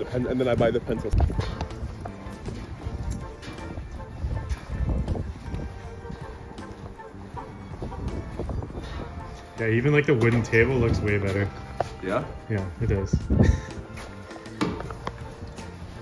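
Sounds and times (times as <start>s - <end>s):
faint background music: 0.0s - 16.0s
footsteps on paving stones: 0.0s - 16.0s.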